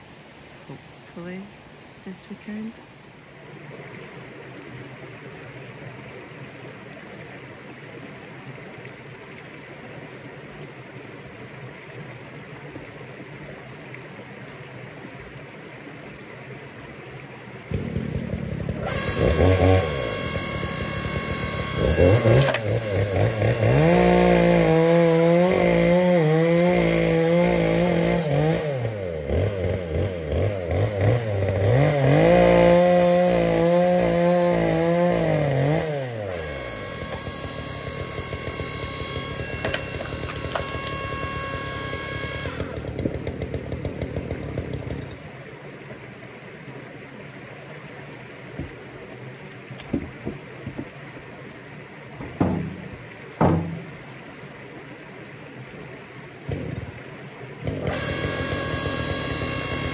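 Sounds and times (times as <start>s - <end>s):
electric log splitter running: 17.7s - 45.2s, 52.2s - 54.0s, 56.5s - 59.9s.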